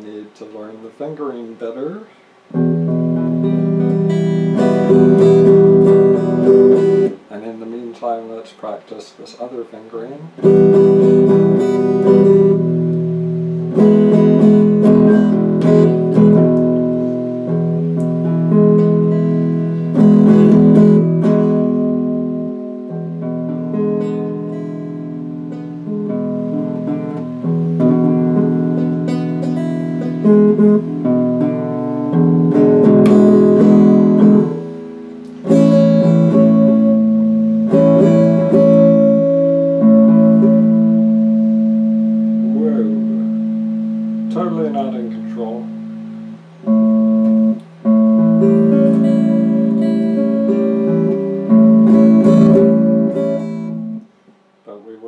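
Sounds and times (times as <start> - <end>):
electric guitar strummed and plucked: 2.4 - 7.3, 10.3 - 54.1.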